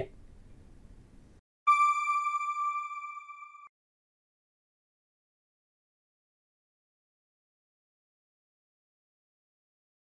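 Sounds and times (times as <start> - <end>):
steady electronic tone: 1.7 - 3.7.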